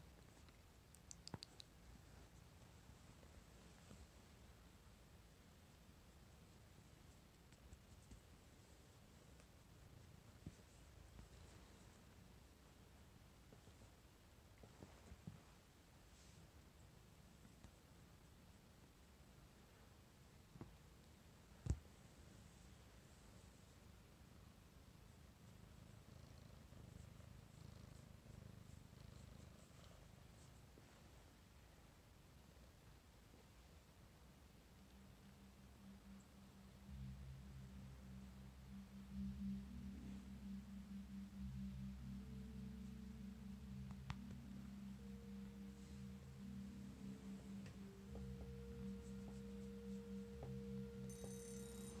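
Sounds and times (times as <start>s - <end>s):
cat purring: 0.0s - 52.0s
faint steady tone: 0.0s - 52.0s.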